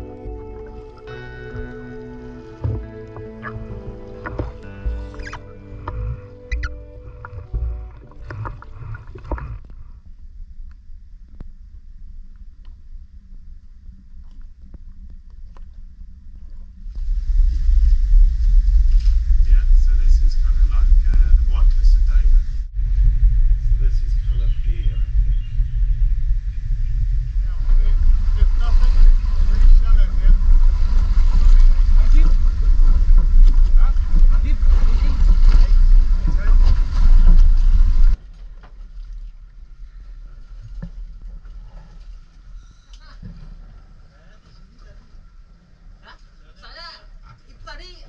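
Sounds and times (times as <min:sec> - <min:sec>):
boat noise: 0:00.0 - 0:10.0, 0:16.7 - 0:47.1
wind rumble on microphone: 0:02.7 - 0:45.8.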